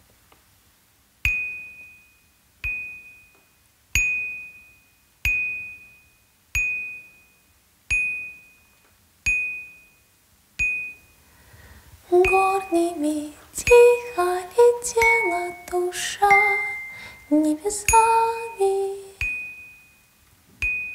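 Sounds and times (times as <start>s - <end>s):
high bell-like note: 14.9s - 20.9s.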